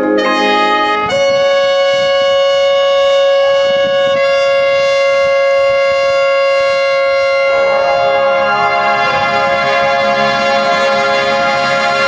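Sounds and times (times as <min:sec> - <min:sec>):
brass band sustained chord: 0:00.0 - 0:12.0.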